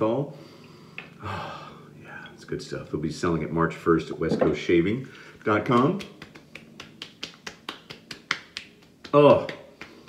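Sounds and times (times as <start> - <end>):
hands slapping face: 5.7 - 10.0.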